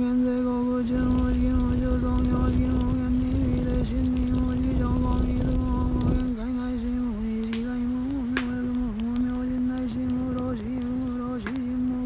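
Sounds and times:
fire crackling: 0.0 - 12.0
person chanting on one note: 0.0 - 12.0.

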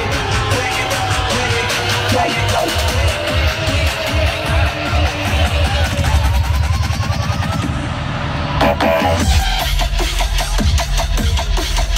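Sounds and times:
deep steady bass: 0.0 - 11.9
electronic dance music: 0.0 - 11.9.

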